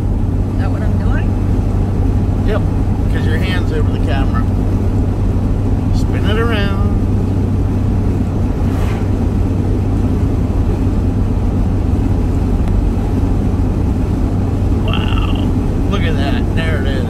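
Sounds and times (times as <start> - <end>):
vehicle engine hum: 0.0 - 17.0.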